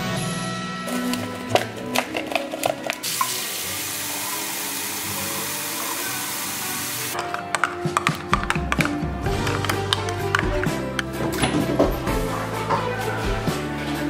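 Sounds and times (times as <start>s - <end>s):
tap running water into mug: 2.0s - 6.0s.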